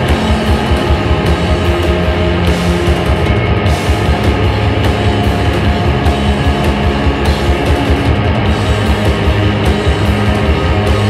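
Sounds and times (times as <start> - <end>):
rock band playing loudly: 0.0 - 11.0.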